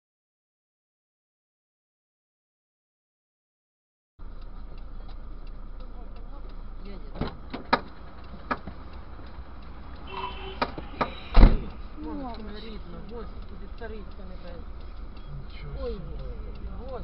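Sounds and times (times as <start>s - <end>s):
faint regular ticking: 4.2s - 17.0s
road and engine rumble: 4.2s - 17.0s
sharp knocks and clicks: 7.1s - 12.5s.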